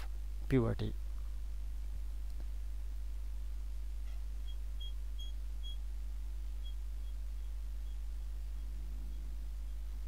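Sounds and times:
low steady hum: 0.0s - 10.0s
short high-pitched beeps: 4.4s - 5.8s.

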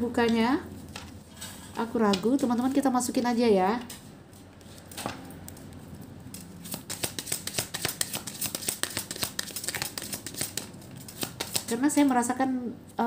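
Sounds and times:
cards being shuffled: 3.9s - 12.0s.

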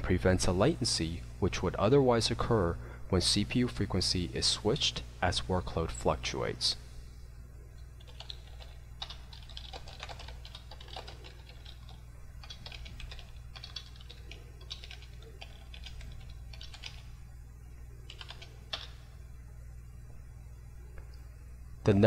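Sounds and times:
keyboard typing: 8.0s - 17.1s, 18.0s - 19.0s.

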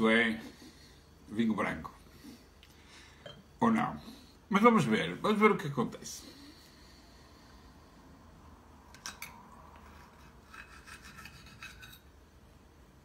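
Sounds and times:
knife scraping on plate: 9.0s - 12.2s.

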